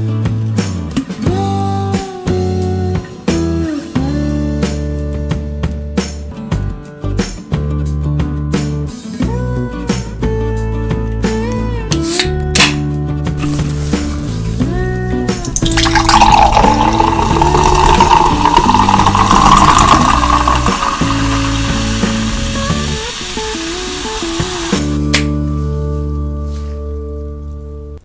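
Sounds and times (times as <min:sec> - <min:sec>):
background music: 0:00.0 - 0:28.0
fizzy soda pouring: 0:15.4 - 0:24.9.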